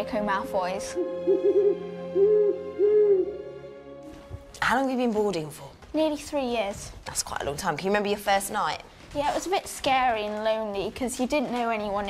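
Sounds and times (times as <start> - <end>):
owl hooting: 0.9 - 3.6.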